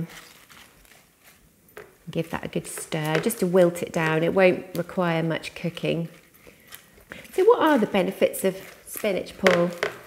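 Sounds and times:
leaves rustling: 0:00.0 - 0:01.4.

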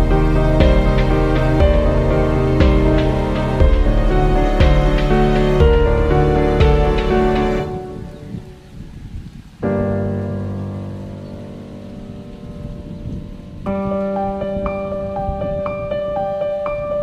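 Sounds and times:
slow soft chords: 0:00.0 - 0:08.6.

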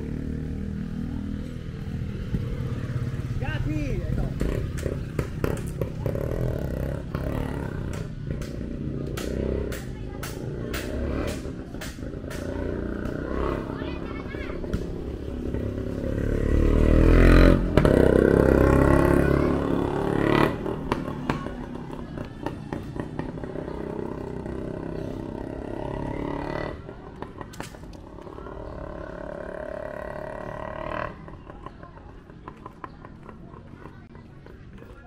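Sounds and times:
vehicle passing by: 0:00.0 - 0:34.9
street background: 0:00.0 - 0:35.0.

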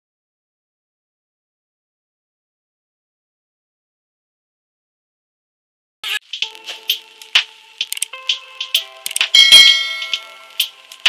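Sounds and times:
bright chime ding: 0:09.4 - 0:10.5.

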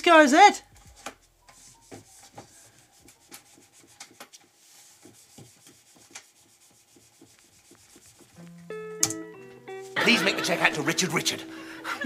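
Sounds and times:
faint rubbing and rustling: 0:00.7 - 0:08.5.

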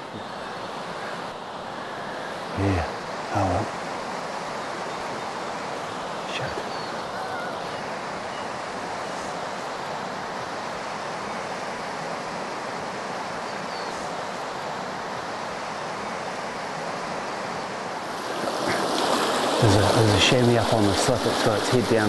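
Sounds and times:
river rushing over stones: 0:00.0 - 0:22.0.

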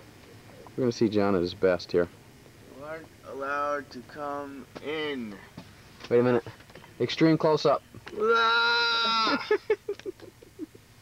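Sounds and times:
bursts of laughter: 0:08.2 - 0:10.8.

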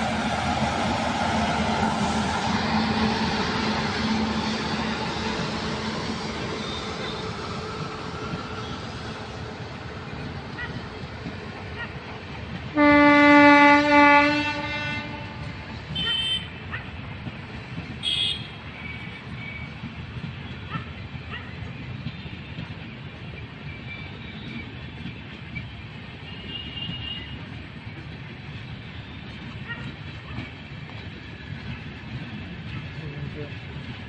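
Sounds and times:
train coaches rumbling by: 0:00.0 - 0:34.0
train horn blast: 0:12.7 - 0:16.6, 0:18.0 - 0:18.6.

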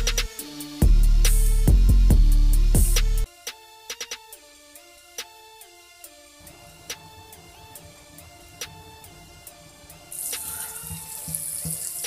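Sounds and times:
tap water running into sink: 0:10.1 - 0:12.0.

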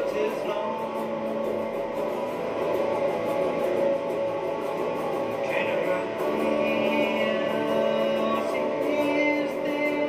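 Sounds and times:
guitar playing blues: 0:00.0 - 0:10.0.

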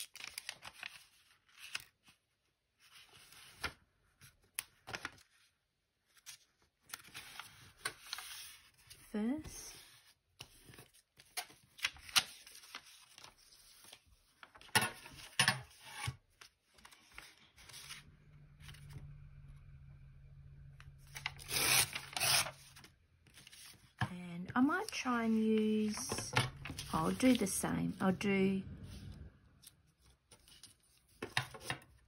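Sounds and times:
paper sheets rustling and sliding: 0:06.1 - 0:19.1, 0:21.0 - 0:32.0
person speaking: 0:24.0 - 0:29.4.

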